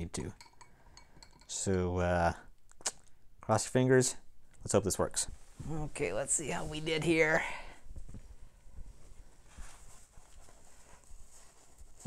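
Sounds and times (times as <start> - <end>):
paper towel rustling: 8.8 - 12.0.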